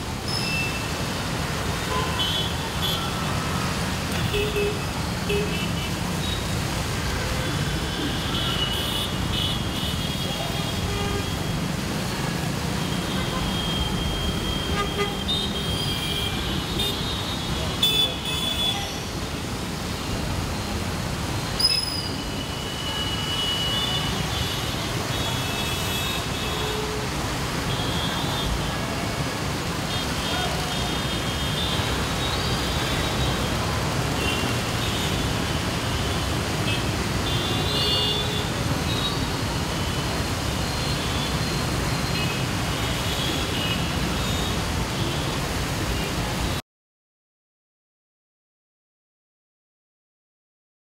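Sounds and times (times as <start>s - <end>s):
traffic on wet road: 0.0s - 46.6s.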